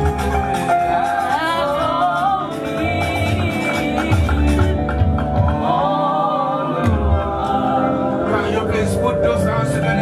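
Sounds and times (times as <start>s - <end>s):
band accompaniment: 0.0s - 10.0s
group singing along: 0.4s - 10.0s
lead singer holding wavering notes: 0.8s - 10.0s.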